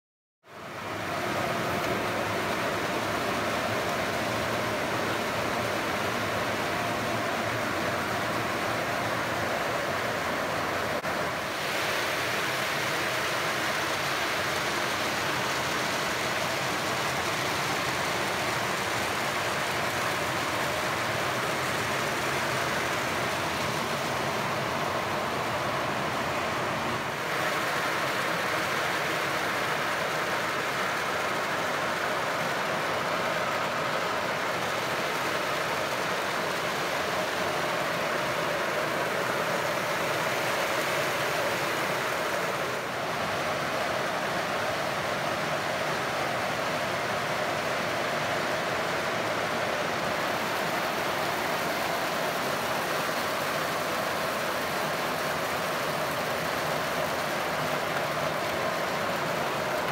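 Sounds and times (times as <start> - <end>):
water spraying: 11.0 - 42.8.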